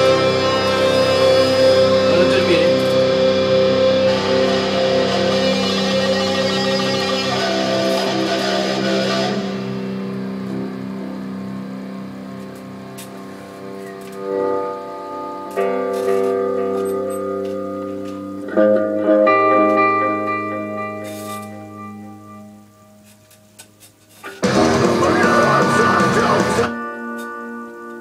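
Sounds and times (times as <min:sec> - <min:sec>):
electric guitar chords ringing: 0:00.0 - 0:28.0.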